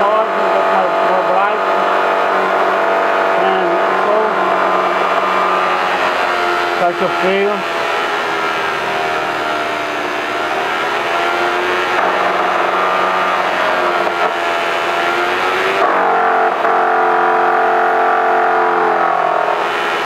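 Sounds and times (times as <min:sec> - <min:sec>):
motor whine: 0:00.0 - 0:20.0.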